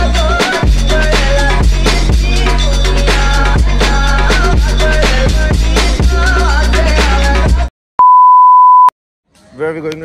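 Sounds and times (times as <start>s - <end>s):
background music with a beat: 0.0s - 7.7s
high-pitched test-tone beep: 8.0s - 8.9s.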